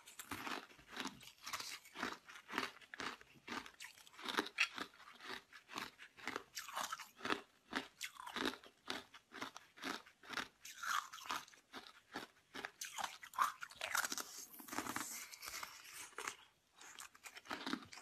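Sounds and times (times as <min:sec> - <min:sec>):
ice being bitten and chewed: 0:00.0 - 0:18.0.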